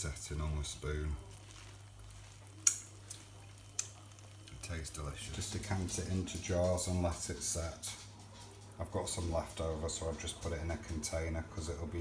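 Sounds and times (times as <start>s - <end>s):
jam bubbling in a pan: 0.0s - 12.0s.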